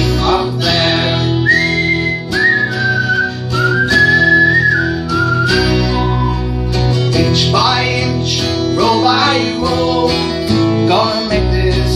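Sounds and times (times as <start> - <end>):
strummed acoustic guitar: 0.0 - 11.9
whistled melody: 1.4 - 6.6.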